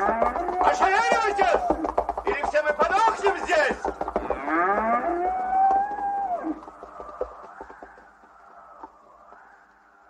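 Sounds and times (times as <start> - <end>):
ox lowing: 0.0 - 2.4, 3.1 - 9.6.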